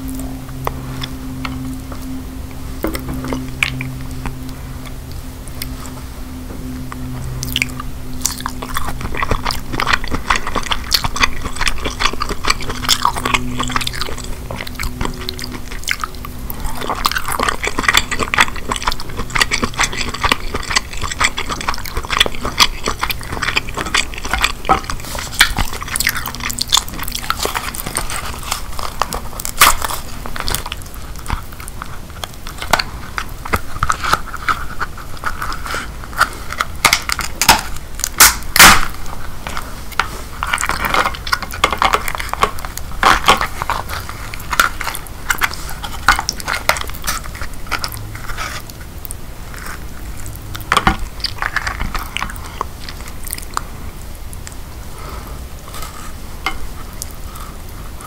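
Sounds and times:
wet chewing and smacking: 0:00.0 - 0:54.7.

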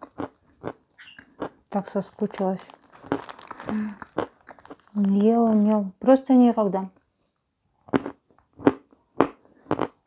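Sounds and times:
chewing a sweet: 0:00.0 - 0:05.8, 0:07.0 - 0:10.0
small crunches: 0:00.0 - 0:05.8
mouth clicks: 0:07.9 - 0:10.0.

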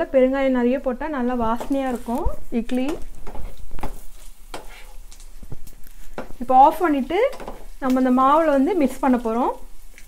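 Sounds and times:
light sizzle of frying: 0:00.0 - 0:10.0
metal spoon scraping a pan: 0:02.8 - 0:05.2.

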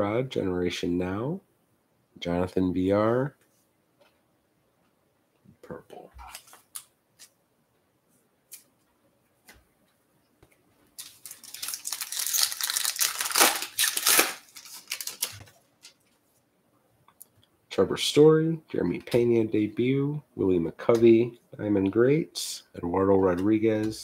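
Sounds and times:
foil wrapper crinkling and tearing: 0:11.0 - 0:16.0.

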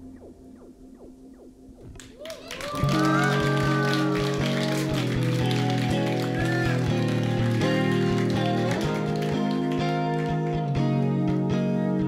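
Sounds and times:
keyboards: 0:00.0 - 0:12.0
bass guitar: 0:01.7 - 0:12.0
electric guitar: 0:01.8 - 0:12.0.

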